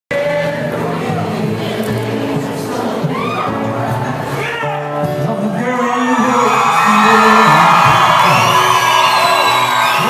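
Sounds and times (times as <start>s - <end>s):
acoustic guitar playing: 0.1s - 10.0s
audience cheering and whooping: 5.7s - 10.0s
high whistles: 7.9s - 10.0s.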